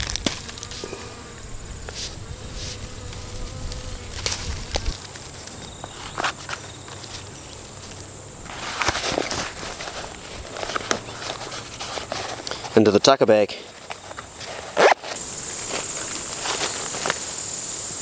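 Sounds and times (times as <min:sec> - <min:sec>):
high-pitched insect hum: 0:00.0 - 0:12.5, 0:13.9 - 0:18.0
cloth pouch rustling: 0:14.4 - 0:17.3.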